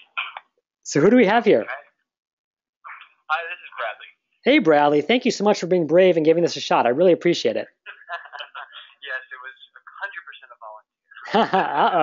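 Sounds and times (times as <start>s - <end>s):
main speaker talking: 0.0s - 1.9s, 2.9s - 12.0s
voice over telephone line: 1.3s - 1.8s, 2.9s - 4.1s, 8.0s - 12.0s.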